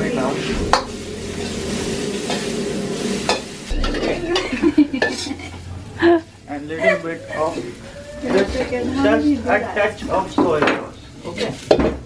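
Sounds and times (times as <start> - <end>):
metal spatula scraping: 0.0 - 10.3
stir-fry sizzling in a wok: 0.0 - 12.0
spatula knocking against wok: 3.3 - 6.3.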